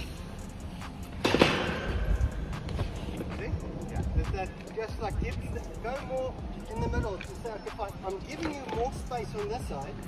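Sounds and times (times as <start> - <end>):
wind rumbling on microphone: 1.9 - 7.3.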